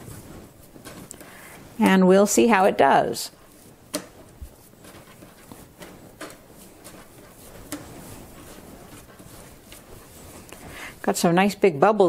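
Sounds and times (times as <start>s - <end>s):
hands handling wet dough: 0.0s - 11.1s.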